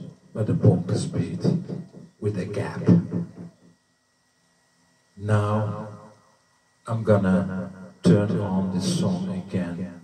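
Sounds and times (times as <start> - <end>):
man speaking: 0.0 - 3.4, 5.2 - 6.0, 6.9 - 10.0.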